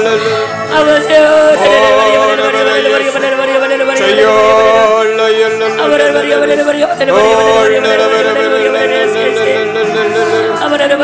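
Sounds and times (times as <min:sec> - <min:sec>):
music: 0:00.0 - 0:11.0
person singing a long steady note: 0:00.0 - 0:11.0.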